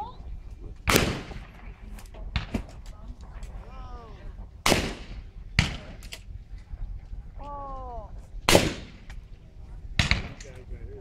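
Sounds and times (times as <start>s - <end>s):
shotgun shots: 0.8s - 1.7s, 2.3s - 2.8s, 4.6s - 6.1s, 8.5s - 9.2s, 10.0s - 10.6s.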